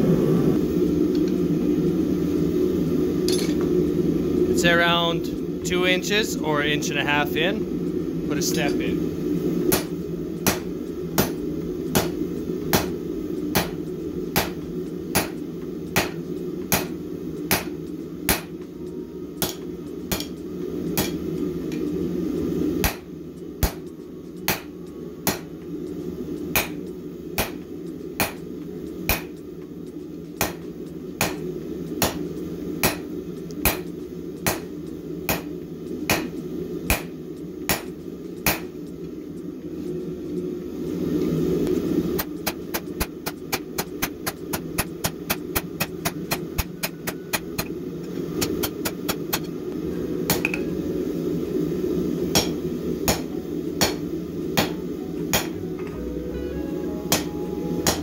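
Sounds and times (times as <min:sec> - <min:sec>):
hammer striking steel on anvil: 0:09.7 - 0:13.8, 0:14.4 - 0:15.4, 0:16.0 - 0:18.6, 0:19.4 - 0:20.4, 0:21.0 - 0:21.2, 0:22.8 - 0:23.9, 0:24.5 - 0:25.5, 0:26.5 - 0:26.8, 0:27.4 - 0:27.6, 0:28.2 - 0:28.4, 0:29.1 - 0:29.4, 0:30.4 - 0:30.6, 0:31.2 - 0:31.4, 0:32.0 - 0:32.2, 0:32.8 - 0:34.7, 0:35.3 - 0:35.5, 0:36.1 - 0:36.3, 0:36.9 - 0:37.1, 0:37.7 - 0:38.7, 0:42.2 - 0:47.7, 0:52.3 - 0:54.0, 0:54.6 - 0:58.0.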